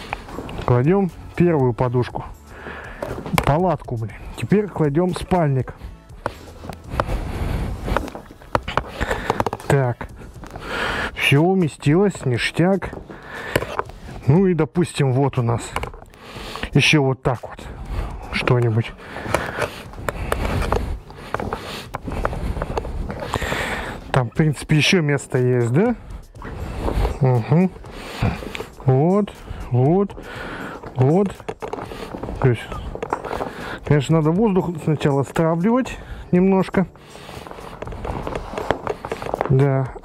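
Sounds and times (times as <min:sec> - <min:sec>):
dry bag fabric rustling and crackling: 0:03.2 - 0:16.2, 0:18.0 - 0:40.0.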